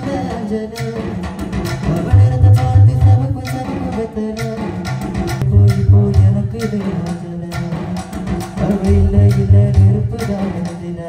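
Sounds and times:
live band playing: 0.0s - 11.0s
bass guitar line: 5.4s - 6.6s, 8.9s - 10.2s.

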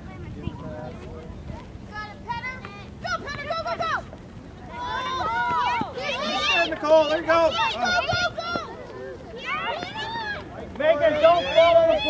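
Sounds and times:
spectators shouting: 4.7s - 12.0s.

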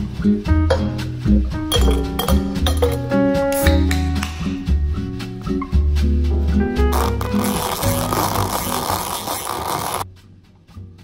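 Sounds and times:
background music with bass: 0.0s - 11.0s.

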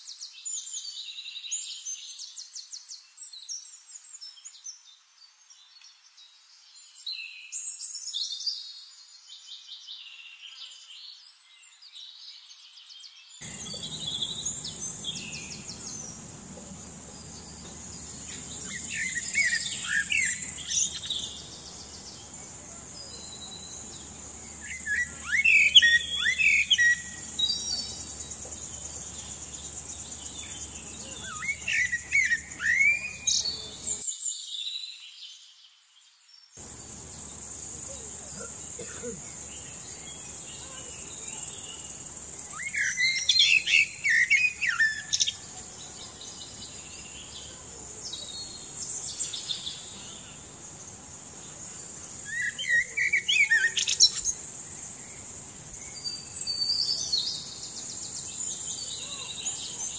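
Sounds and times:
high-pitched insect drone: 13.4s - 33.9s
blackbird singing: 13.4s - 34.8s, 36.6s - 51.0s, 51.7s - 59.9s.

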